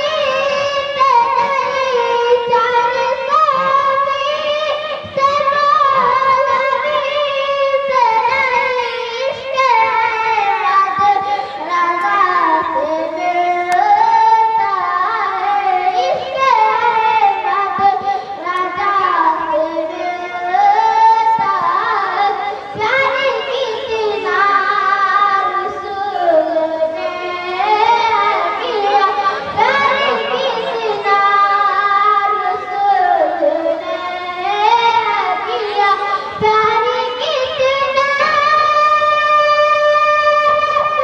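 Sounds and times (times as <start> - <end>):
boy singing into a microphone: 0.0 - 41.0.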